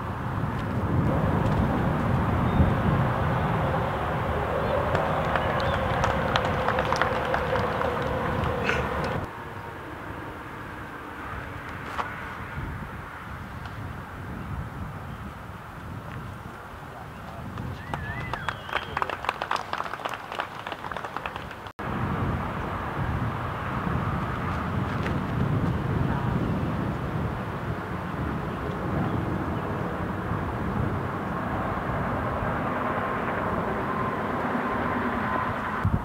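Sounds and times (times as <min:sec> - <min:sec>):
wind rumble on microphone: 0:00.0 - 0:09.8, 0:11.2 - 0:19.5, 0:21.4 - 0:36.0
distant voices murmuring: 0:01.1 - 0:11.8, 0:16.8 - 0:21.7.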